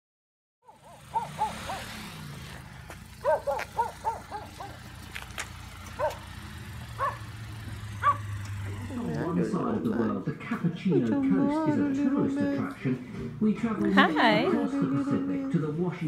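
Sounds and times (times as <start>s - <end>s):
dog yipping: 0.6s - 1.8s, 3.2s - 4.8s, 6.0s - 6.2s, 7.0s - 7.3s, 8.0s - 8.3s.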